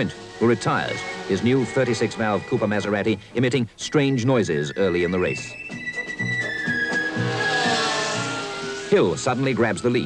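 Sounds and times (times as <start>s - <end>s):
racing car engine passing: 0.0s - 3.3s, 6.0s - 10.0s
soundtrack music with low note: 4.4s - 10.0s.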